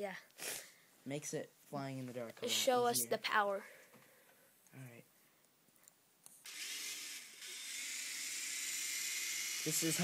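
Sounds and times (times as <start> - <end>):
toy helicopter motors whirring: 6.4 - 10.0.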